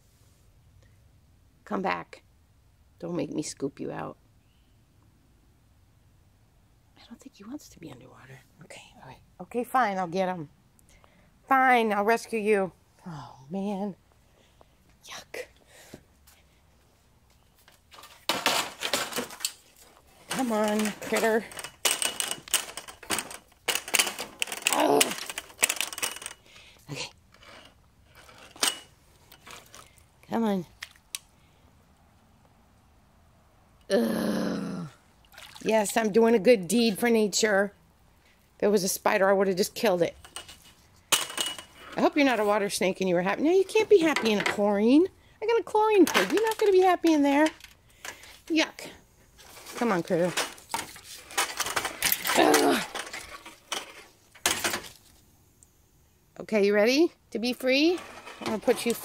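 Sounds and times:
net rustling and clattering: 17.6s - 26.4s, 49.4s - 55.2s.

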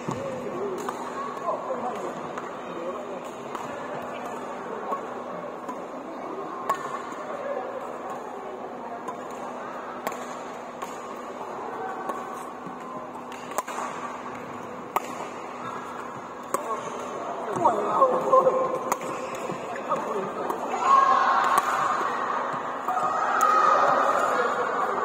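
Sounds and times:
badminton rackets hitting shuttlecocks: 0.0s - 2.5s, 9.0s - 24.9s
distant voices in sports hall: 0.0s - 25.0s.

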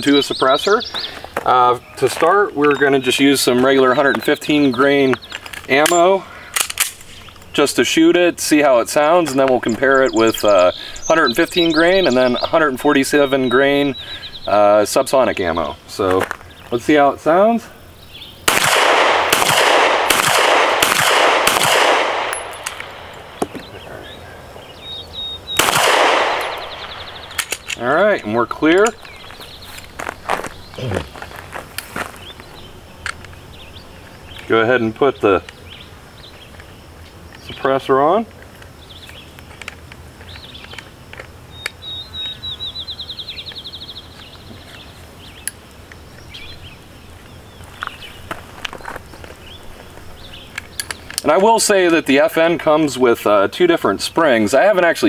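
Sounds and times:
bird chirps: 0.0s - 6.2s, 9.0s - 17.1s, 17.8s - 18.4s, 22.3s - 37.9s, 38.8s - 51.4s
songbird trilling: 0.0s - 6.2s, 8.7s - 18.4s, 22.3s - 38.2s, 40.2s - 51.8s
pistol shots with echo: 18.5s - 23.5s, 25.5s - 27.8s.

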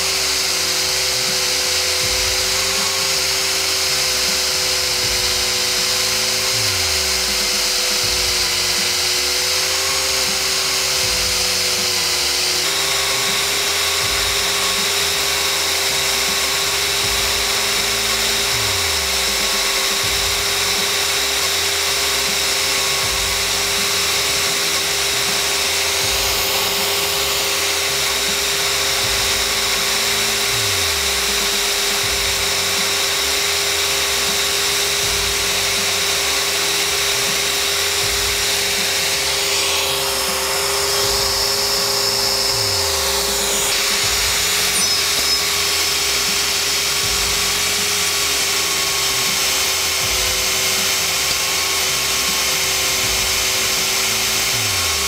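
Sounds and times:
cordless drill whining: 0.0s - 55.0s.

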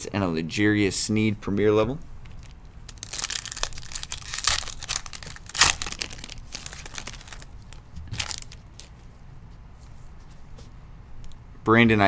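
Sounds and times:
foil wrapper tearing and crinkling: 2.4s - 8.9s.

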